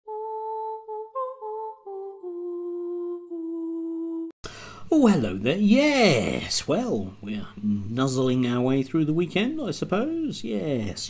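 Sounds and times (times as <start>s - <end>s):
person humming a melody: 0.0s - 4.4s.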